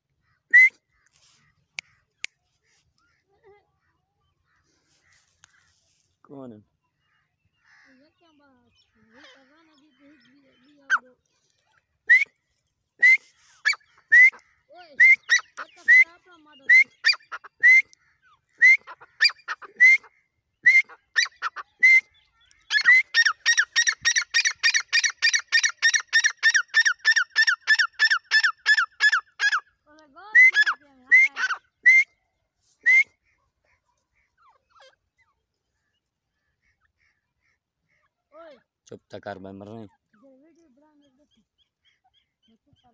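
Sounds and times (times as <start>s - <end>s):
francolin calling: 6.8s - 11.2s, 12.0s - 35.4s.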